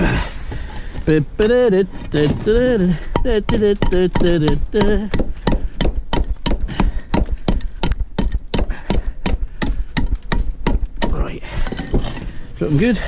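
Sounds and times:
rough gritty scraping: 0:00.0 - 0:13.0
hammer chipping concrete block: 0:03.1 - 0:12.0.

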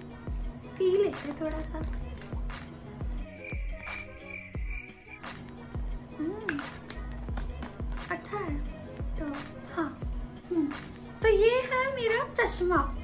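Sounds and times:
background music with bass beat: 0:01.5 - 0:11.6
held high tone: 0:03.3 - 0:05.2.

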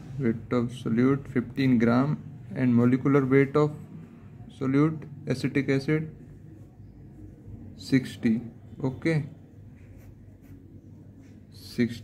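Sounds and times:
pen scratching on paper: 0:09.7 - 0:11.5.

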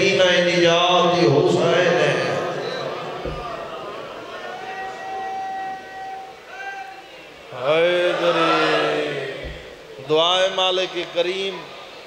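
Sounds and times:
man chanting over loudspeaker: 0:00.0 - 0:02.8.

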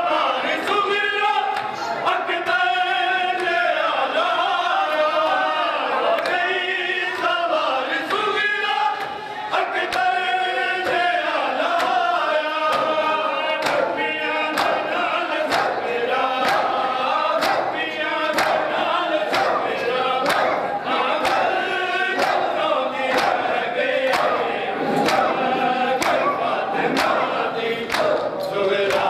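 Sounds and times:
men chanting together: 0:00.0 - 0:29.0
hands slapping chests: 0:17.4 - 0:17.7, 0:18.3 - 0:18.7, 0:19.3 - 0:20.6, 0:21.2 - 0:21.5, 0:23.1 - 0:24.4.

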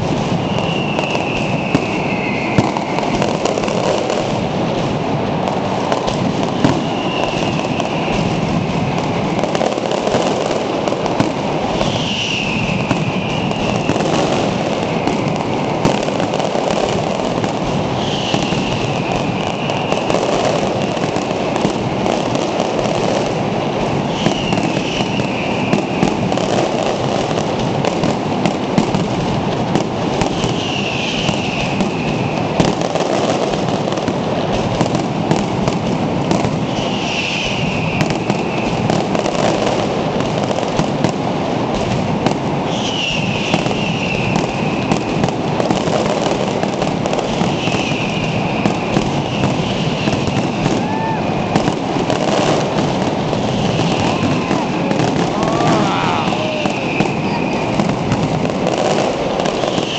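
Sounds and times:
falling firework whistle: 0:00.0 - 0:59.9
fireworks crackling and banging: 0:00.0 - 0:59.9.

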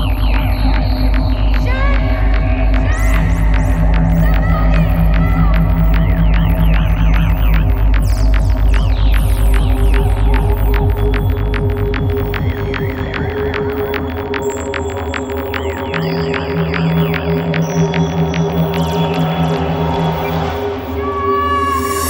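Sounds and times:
deep throbbing bass drone: 0:00.0 - 0:22.0
fast electronic clicks: 0:02.7 - 0:20.6
chirping synth effects: 0:03.5 - 0:22.0.

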